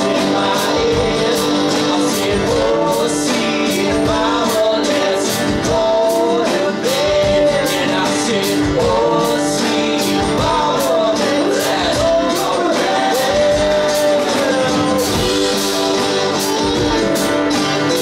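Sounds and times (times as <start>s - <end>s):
bending melodic lead line: 0.0s - 18.0s
drum kit steady beat: 0.0s - 18.0s
strummed acoustic guitars: 0.0s - 18.0s.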